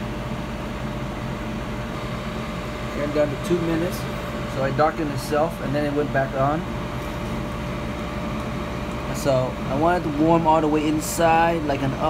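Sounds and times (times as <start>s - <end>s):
air fryer fan whirring: 0.0s - 12.0s
faint steady whine: 0.0s - 12.0s.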